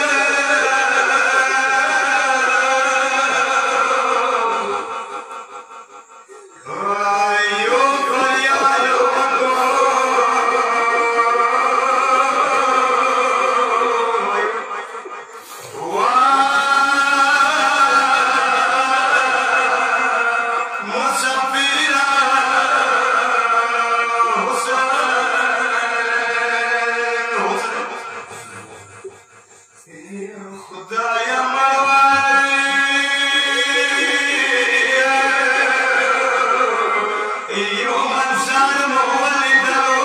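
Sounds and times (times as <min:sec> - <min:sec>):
men chanting into a microphone: 0:00.0 - 0:40.0.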